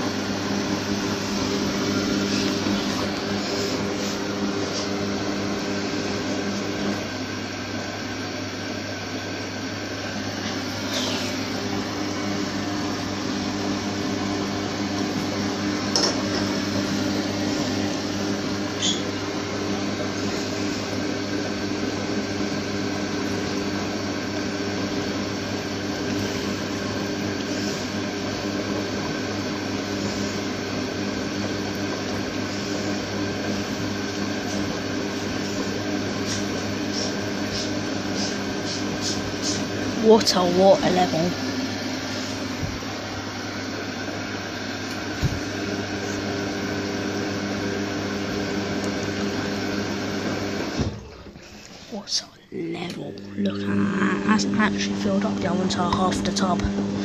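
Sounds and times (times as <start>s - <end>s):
washing machine motor humming: 0.0s - 57.0s.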